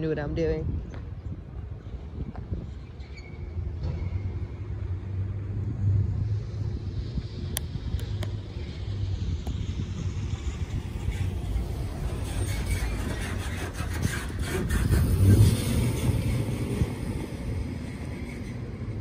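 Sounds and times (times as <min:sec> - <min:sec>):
steady low rumble: 0:03.6 - 0:19.0
delivery truck driving past: 0:08.4 - 0:19.0.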